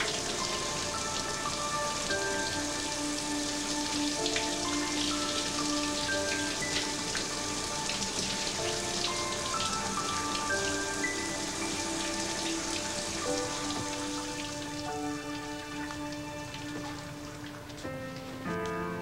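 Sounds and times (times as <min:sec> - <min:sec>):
shower spray running: 0:00.0 - 0:19.0.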